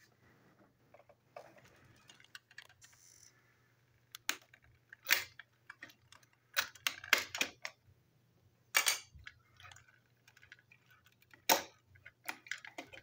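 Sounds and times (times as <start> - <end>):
plastic toy clicks and knocks: 4.1 - 7.8, 8.7 - 13.0.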